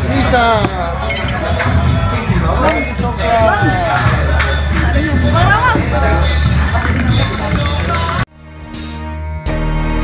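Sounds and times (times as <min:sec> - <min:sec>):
chatter: 0:00.0 - 0:08.3
background music: 0:00.0 - 0:10.0
tableware clinking: 0:00.6 - 0:01.6, 0:02.6 - 0:03.1, 0:06.7 - 0:08.3.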